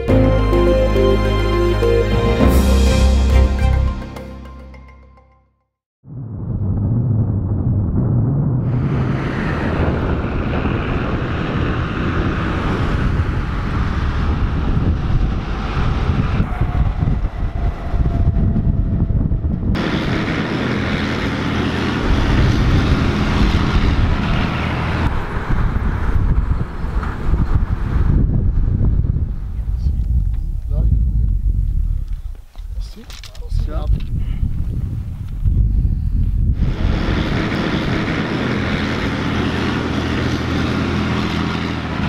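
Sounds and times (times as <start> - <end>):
wind on microphone: 6.0 - 42.0
heavy diesel truck engines: 9.0 - 28.7, 36.6 - 42.0.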